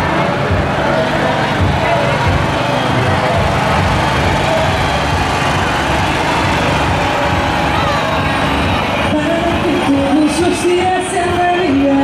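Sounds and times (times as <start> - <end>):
crowd talking: 0.0 - 12.0
small car engines running: 0.0 - 12.0.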